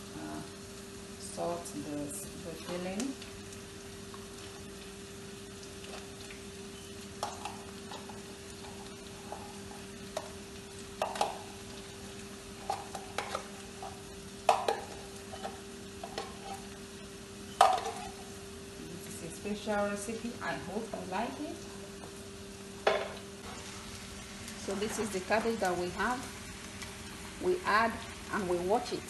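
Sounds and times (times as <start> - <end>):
food frying in a pan: 0.0 - 29.0.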